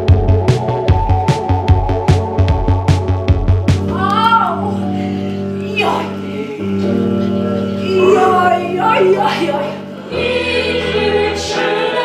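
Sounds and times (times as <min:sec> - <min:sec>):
choir singing: 0:05.7 - 0:07.2, 0:07.8 - 0:12.0.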